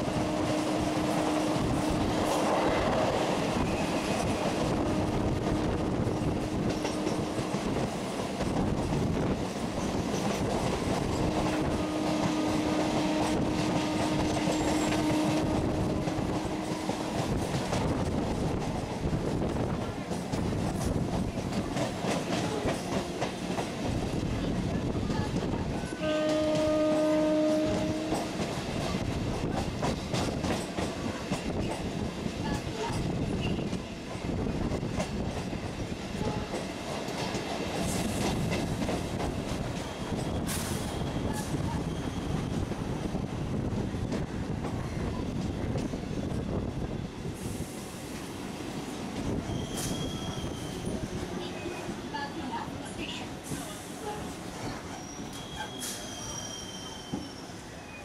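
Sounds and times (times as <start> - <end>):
train horn: 0.0 - 2.1, 4.7 - 5.9, 11.3 - 17.1, 25.9 - 28.4, 36.2 - 36.6, 54.0 - 54.4
train rumbling: 0.0 - 58.0
high-pitched wheel squeals: 49.4 - 51.0, 54.9 - 58.0.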